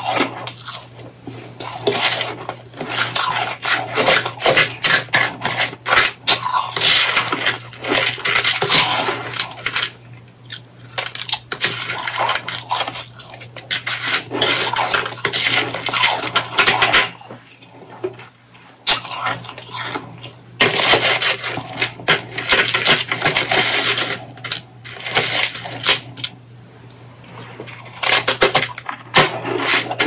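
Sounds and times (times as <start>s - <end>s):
chewing crunchy shaved ice: 0.0s - 26.4s.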